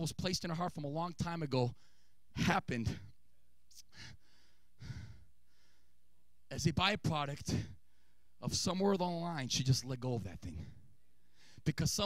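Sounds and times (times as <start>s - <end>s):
man breathing into microphone: 1.8s - 2.3s, 3.9s - 6.0s, 10.6s - 11.7s.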